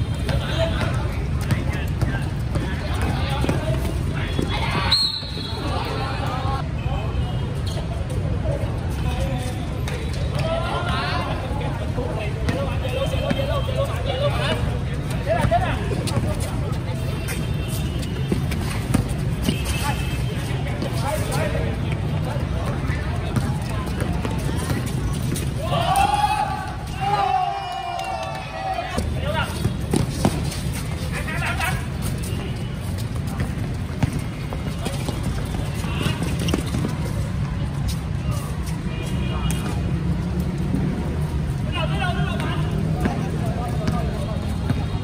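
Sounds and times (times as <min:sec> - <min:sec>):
people shouting and chatting: 0:00.0 - 0:45.0
basketball bouncing on concrete: 0:00.3 - 0:04.6, 0:33.2 - 0:37.1, 0:42.4 - 0:44.9.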